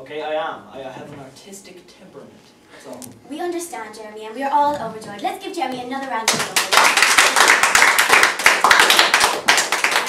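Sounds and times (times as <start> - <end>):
people clapping: 6.0 - 10.0.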